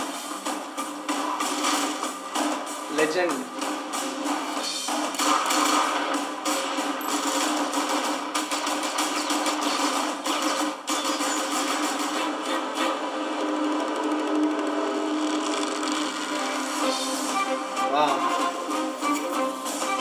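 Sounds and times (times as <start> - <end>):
thin film trailer music: 0.0 - 20.0.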